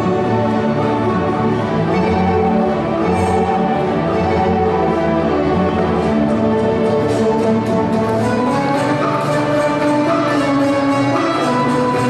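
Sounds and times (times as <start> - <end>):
folk orchestra playing: 0.0 - 12.0.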